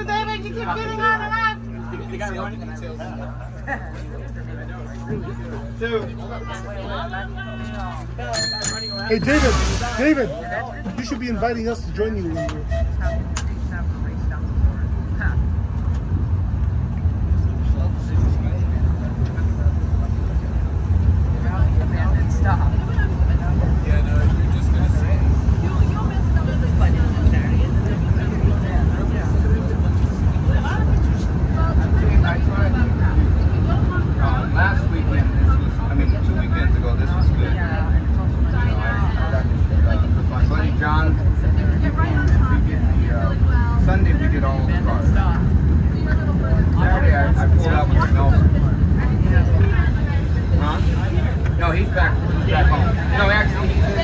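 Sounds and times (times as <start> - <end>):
passengers chatting: 0.0 - 54.0
tram rumbling on rails: 0.0 - 54.0.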